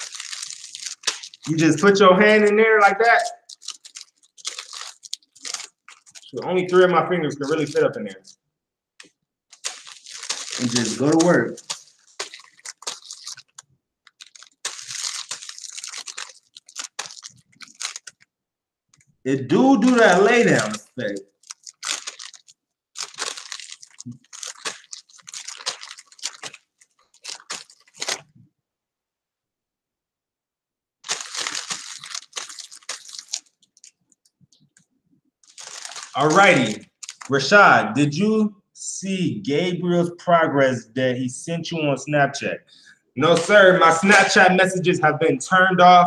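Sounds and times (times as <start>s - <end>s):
plastic bag crinkling on hair: 0.0s - 8.4s, 9.5s - 18.3s, 19.6s - 28.4s, 31.0s - 34.8s, 35.4s - 37.3s, 43.2s - 44.4s.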